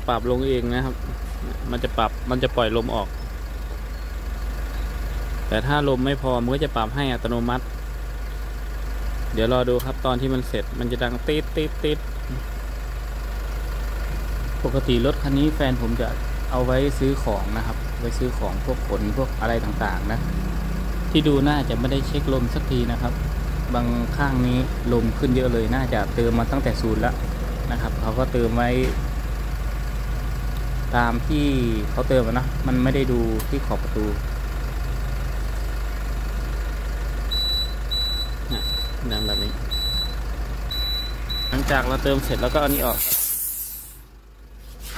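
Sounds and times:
low mechanical hum: 14.0s - 44.9s
tyre inflator high beeps: 37.3s - 44.0s.

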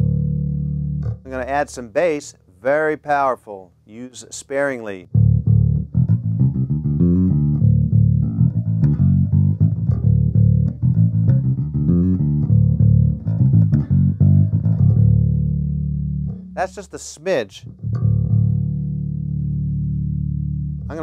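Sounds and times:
electric bass plucked notes: 0.0s - 2.2s, 5.0s - 21.0s.

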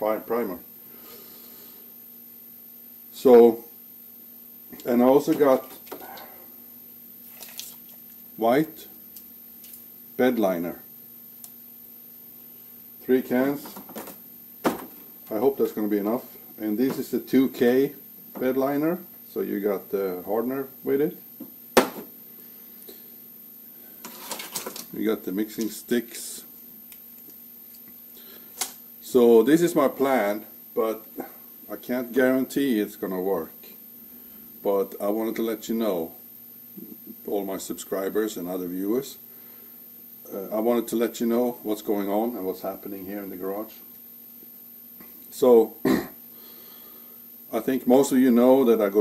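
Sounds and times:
faint low hum: 0.0s - 49.0s.

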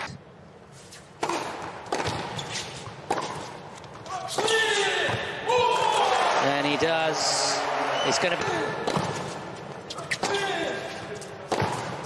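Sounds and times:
tennis ball struck by rackets: 1.2s - 3.5s, 11.5s - 12.0s.

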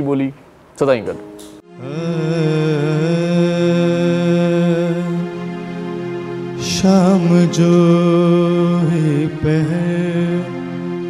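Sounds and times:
man singing a long note: 1.6s - 11.0s.

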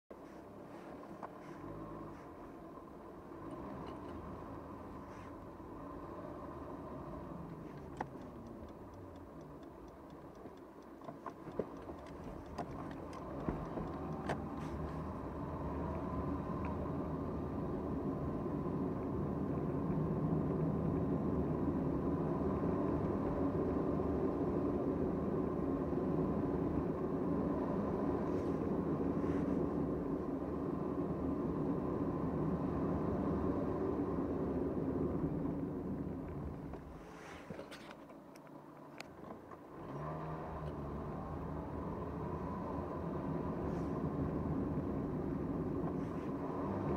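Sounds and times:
car engine and tyre noise: 0.0s - 46.9s
road rumble: 0.0s - 46.9s.

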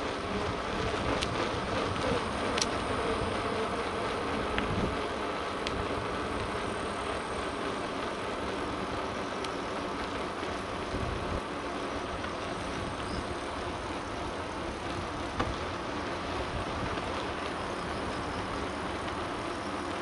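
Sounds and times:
wind on microphone: 0.0s - 6.9s
bicycle tyres rolling on pavement: 0.0s - 20.0s
faint clicks: 1.1s - 2.8s, 5.4s - 6.7s, 9.3s - 10.6s.

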